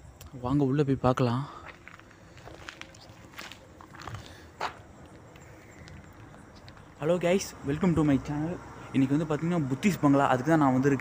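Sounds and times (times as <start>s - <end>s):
soft footsteps: 1.6s - 8.2s.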